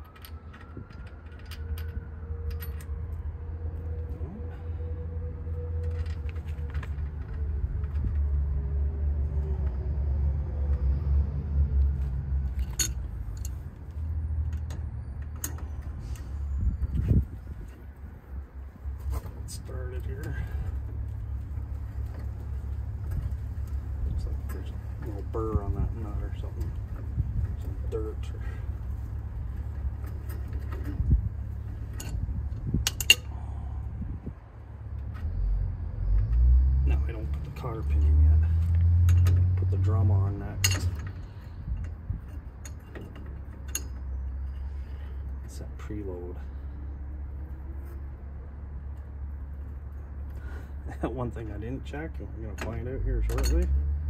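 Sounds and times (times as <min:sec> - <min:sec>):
steady low rumble: 0:00.0 - 0:53.6
metal wrench clicks and clinks: 0:32.8 - 0:33.3.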